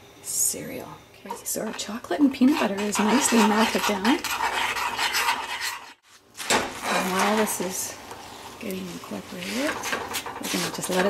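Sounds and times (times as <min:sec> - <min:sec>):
spoon scraping a saucepan: 0:01.3 - 0:06.0, 0:06.8 - 0:07.8, 0:08.9 - 0:11.0.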